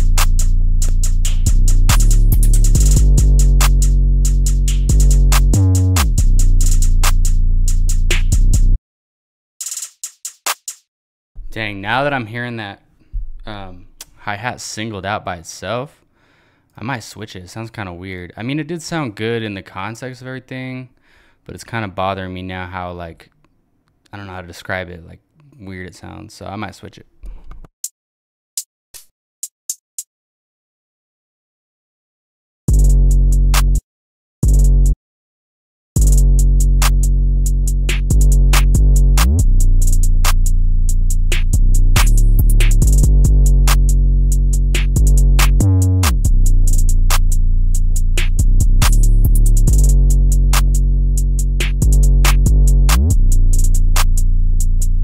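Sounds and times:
fast hi-hats: 0.0s - 8.6s, 9.6s - 10.9s, 36.0s - 55.0s
deep bass: 0.0s - 8.8s, 32.7s - 33.8s, 34.4s - 35.0s, 36.0s - 55.0s.

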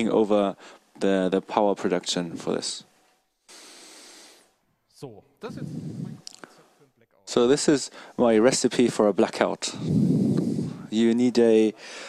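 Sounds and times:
steady hiss: 3.5s - 12.0s.

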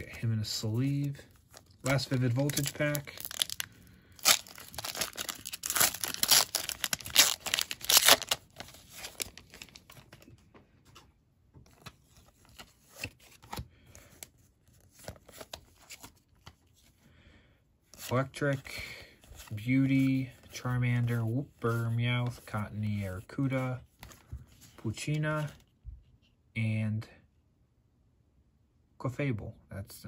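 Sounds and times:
cards rustling and clicking: 0.0s - 16.9s, 24.0s - 25.7s
foil wrapper tearing and crinkling: 1.5s - 10.0s.

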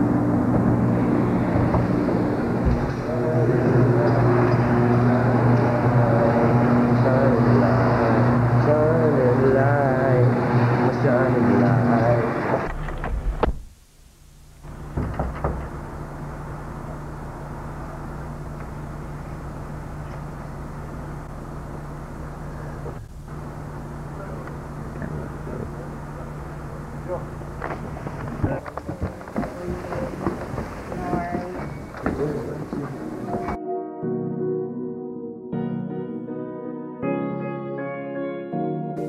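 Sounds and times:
steady low hum: 0.0s - 33.6s
indistinct voices: 1.6s - 12.7s, 24.0s - 33.6s.

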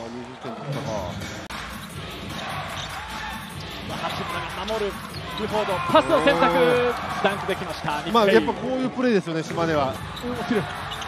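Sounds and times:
crowd noise in a large hall: 0.0s - 11.0s.

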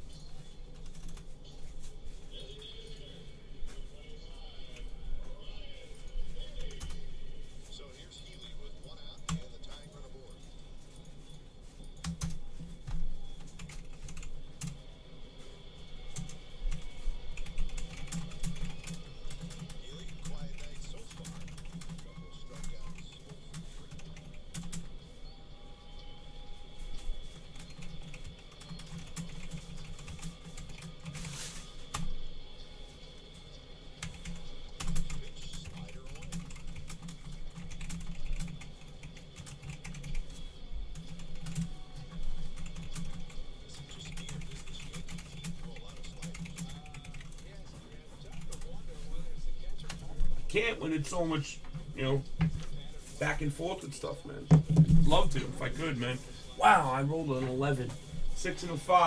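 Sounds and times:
typing on computer keyboard: 11.9s - 14.8s, 16.1s - 24.9s, 27.3s - 32.1s, 34.0s - 40.4s, 41.0s - 47.6s.

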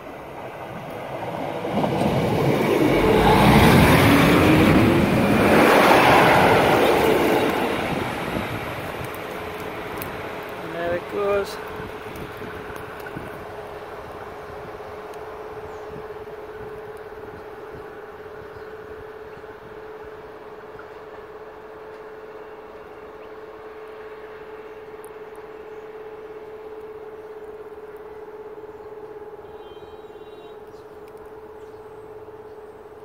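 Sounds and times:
diesel train rumbling: 0.0s - 33.0s.

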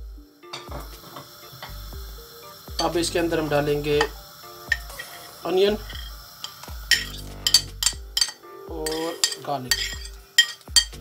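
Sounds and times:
metal spoon scraping ceramic plate: 6.9s - 11.0s.

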